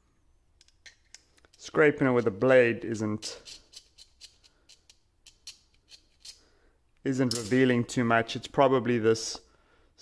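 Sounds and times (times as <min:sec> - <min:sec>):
knife blade scraping metal: 0:03.3 - 0:06.5.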